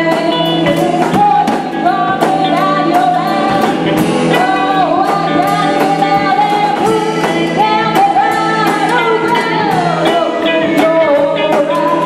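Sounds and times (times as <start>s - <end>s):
live rock band playing: 0.0s - 12.0s
woman singing: 0.0s - 12.0s.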